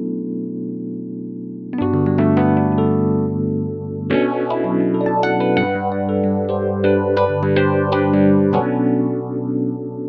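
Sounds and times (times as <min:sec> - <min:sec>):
electric piano chords with phaser: 0:00.0 - 0:10.0.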